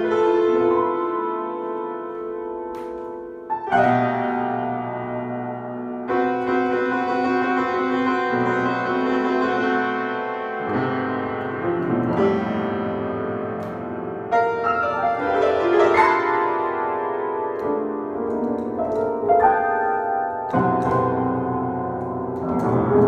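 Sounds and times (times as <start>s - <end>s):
solo piano improvisation: 0.0s - 23.0s.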